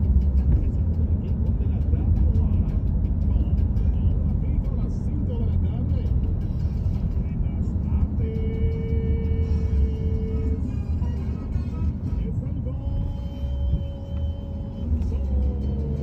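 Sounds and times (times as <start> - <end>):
car cabin rumble: 0.0 - 16.0.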